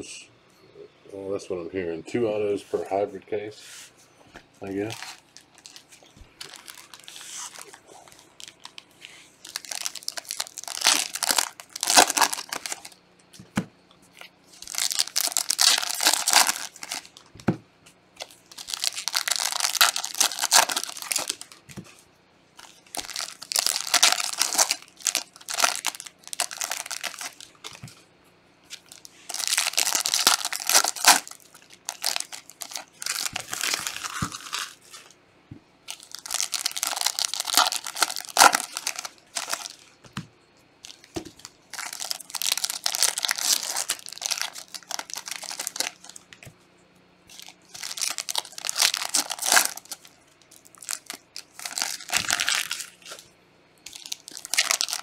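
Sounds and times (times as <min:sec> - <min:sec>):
foil wrappers tearing and crinkling: 0:04.7 - 0:13.0, 0:14.2 - 0:17.2, 0:18.2 - 0:21.8, 0:22.6 - 0:27.9, 0:28.7 - 0:35.2, 0:35.9 - 0:40.0, 0:40.8 - 0:46.4, 0:47.3 - 0:55.0.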